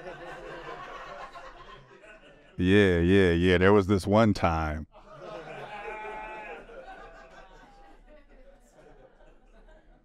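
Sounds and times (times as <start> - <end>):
faint audience laughter: 0.0 - 2.6, 5.0 - 10.0.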